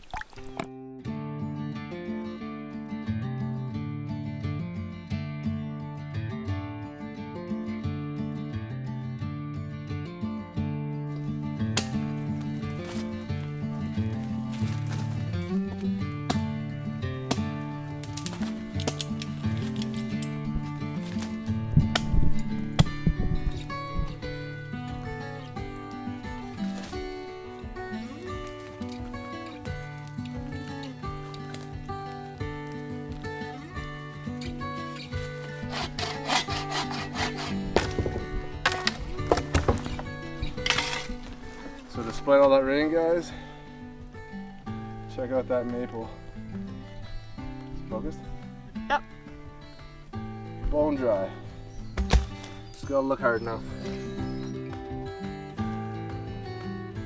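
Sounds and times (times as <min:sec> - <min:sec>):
background music: 0:00.0 - 0:57.0
wood being sawn and cracked: 0:17.3 - 0:20.2, 0:35.0 - 0:42.0.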